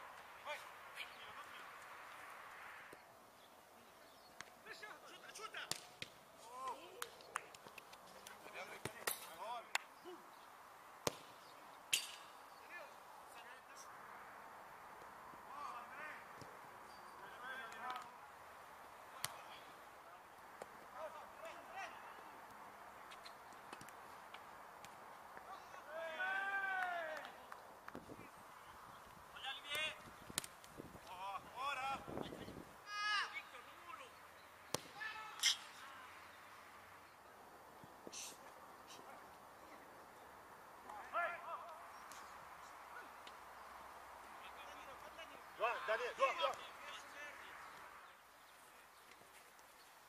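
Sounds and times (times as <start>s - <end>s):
faint outdoor background: 0.0s - 50.0s
players shouting: 25.5s - 27.4s, 34.8s - 35.4s.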